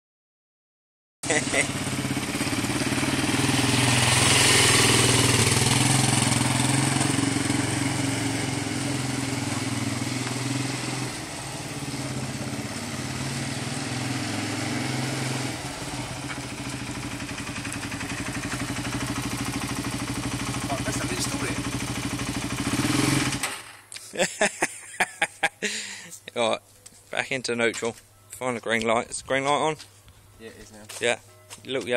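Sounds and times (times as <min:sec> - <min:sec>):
quad bike engine running at low revs: 0:01.3 - 0:23.6.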